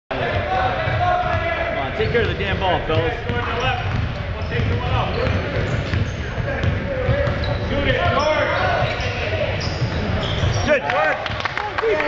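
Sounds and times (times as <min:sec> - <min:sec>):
murmur of voices: 0:00.1 - 0:12.0
basketball bouncing thuds: 0:02.9 - 0:07.5.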